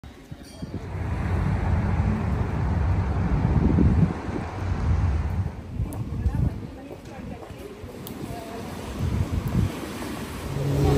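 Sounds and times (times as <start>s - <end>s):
wind buffeting microphone: 0.1s - 10.9s.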